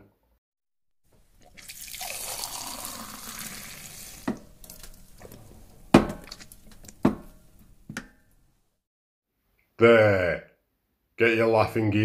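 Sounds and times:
beer pouring into a glass: 1.2 - 6.6
sharp knocks: 5.9 - 8.2.

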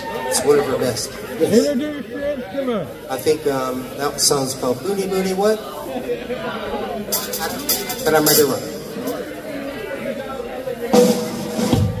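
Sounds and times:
low background voices: 0.0 - 12.0
drum kit hits: 11.0 - 12.0.

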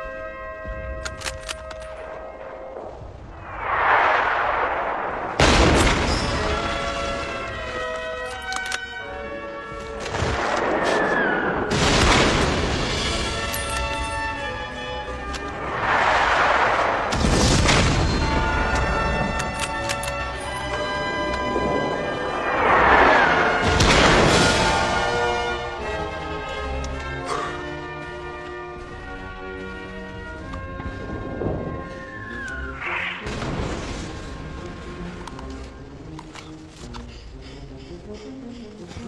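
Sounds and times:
orchestral film music: 0.0 - 39.0
rushing swells of noise: 2.8 - 6.6, 15.5 - 17.3, 20.8 - 25.4
loud booms: 3.3 - 7.3, 10.2 - 13.4, 15.7 - 18.7, 21.6 - 25.7.

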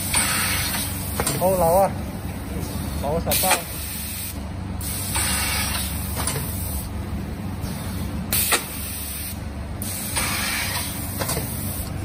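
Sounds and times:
compressed air hiss: 0.0 - 1.1, 3.3 - 6.9, 7.7 - 11.9.

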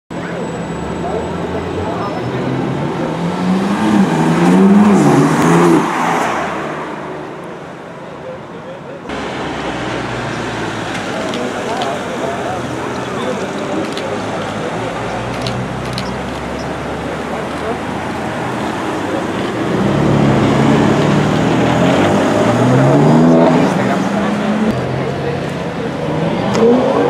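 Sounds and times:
people's voices: 0.1 - 27.0.

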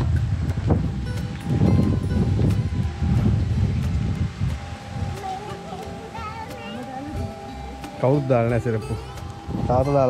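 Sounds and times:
faint background music: 0.0 - 10.0
wind buffeting microphone: 0.0 - 10.0.

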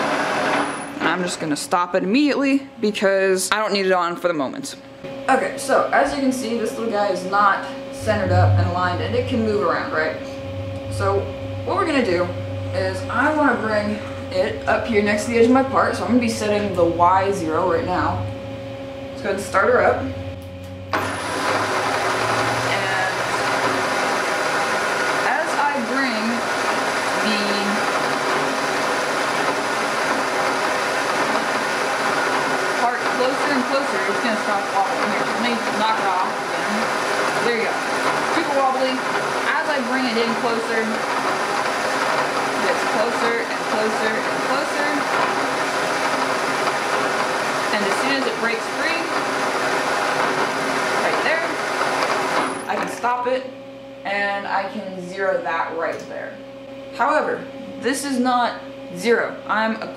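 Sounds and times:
milling machine spindle running: 0.0 - 1.4, 6.2 - 53.4.

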